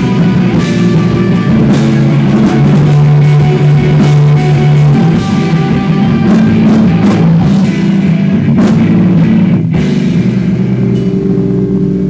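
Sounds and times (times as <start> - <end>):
electric guitar chord drone: 0.0 - 12.0.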